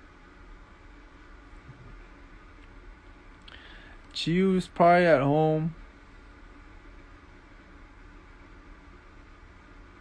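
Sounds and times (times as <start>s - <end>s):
faint steady hiss: 0.0s - 10.0s
low hum: 0.0s - 10.0s.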